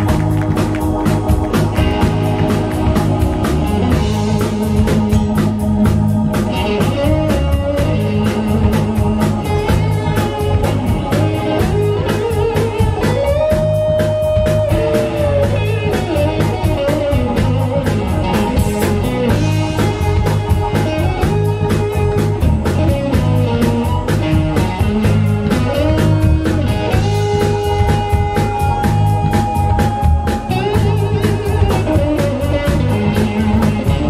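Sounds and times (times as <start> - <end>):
blues band playing: 0.0 - 34.0
electric guitar lead line: 0.0 - 34.0
steady drum beat: 0.0 - 34.0.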